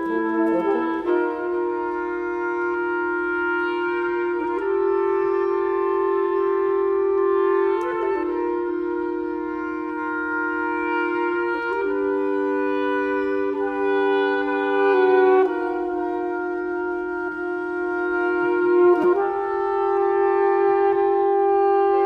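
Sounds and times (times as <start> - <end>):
reed quintet playing held chords: 0.0 - 22.0.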